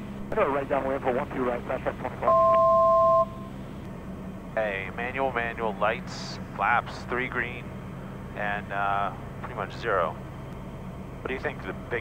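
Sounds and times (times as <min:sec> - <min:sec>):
aircraft cabin drone: 0:00.0 - 0:12.0.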